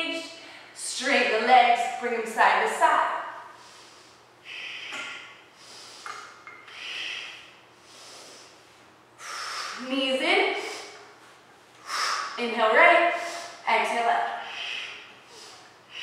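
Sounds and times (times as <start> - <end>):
woman breathing hard: 3.4 - 8.6, 9.2 - 9.9, 14.3 - 16.0
short voiced breath: 3.6 - 8.5, 9.2 - 9.9, 11.8 - 12.4, 14.4 - 16.0.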